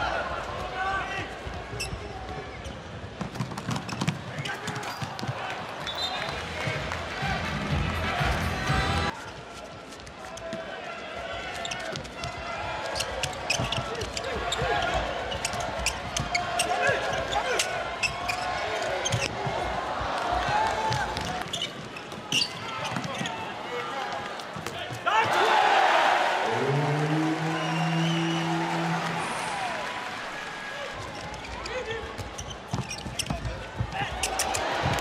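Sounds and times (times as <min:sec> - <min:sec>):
crowd murmur in arena: 0:00.0 - 0:35.0
ball bouncing on court: 0:32.2 - 0:35.0.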